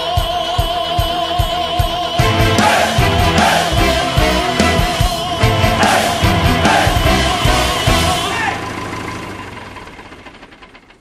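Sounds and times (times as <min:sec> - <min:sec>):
music: 0:00.0 - 0:08.8
tractor engine chugging: 0:00.0 - 0:11.0.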